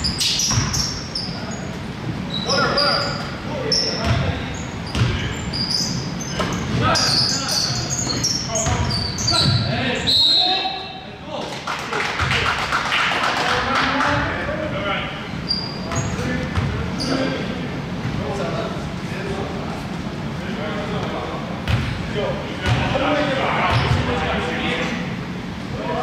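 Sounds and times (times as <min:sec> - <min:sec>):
sneakers squeaking: 0:00.0 - 0:11.0, 0:15.3 - 0:18.2, 0:21.6 - 0:24.3.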